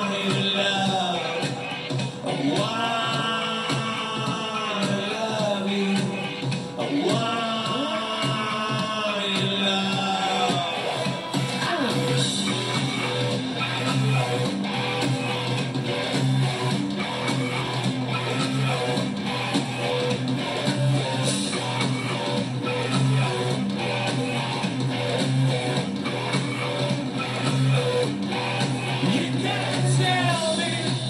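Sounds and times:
rock band playing: 0:00.0 - 0:31.0.

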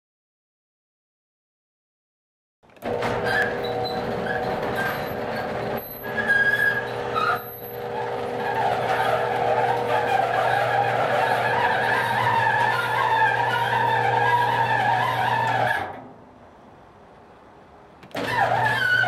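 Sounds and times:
garage door squealing and creaking: 0:02.8 - 0:16.2, 0:18.1 - 0:19.0.

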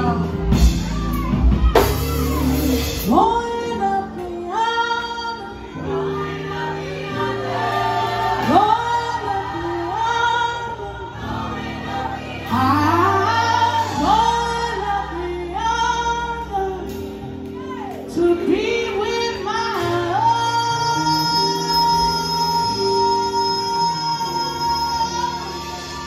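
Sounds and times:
electric bass: 0:00.0 - 0:04.5
keyboard chords: 0:00.0 - 0:26.0
woman singing: 0:00.0 - 0:26.0.

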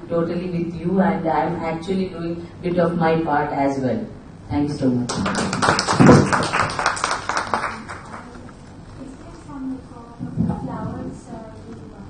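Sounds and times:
audience applause: 0:05.1 - 0:08.4.

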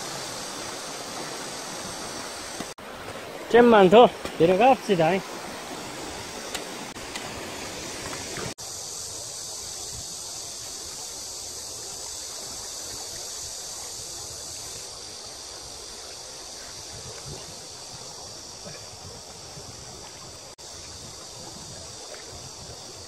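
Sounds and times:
river water flowing: 0:00.0 - 0:23.0.

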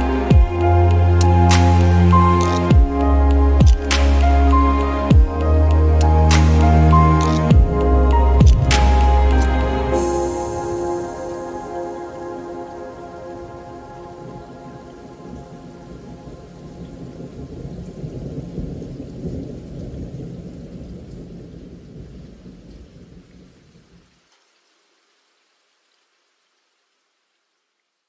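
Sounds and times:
ambient music: 0:00.0 - 0:17.9
rain hiss: 0:00.0 - 0:28.0
thunder rumble: 0:00.3 - 0:23.8.

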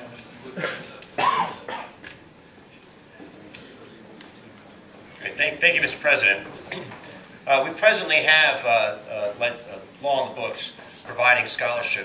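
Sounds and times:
man coughing into microphone: 0:00.5 - 0:02.0.

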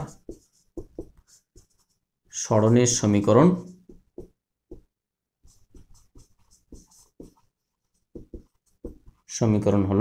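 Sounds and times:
marker scratching on whiteboard: 0:00.0 - 0:09.4.

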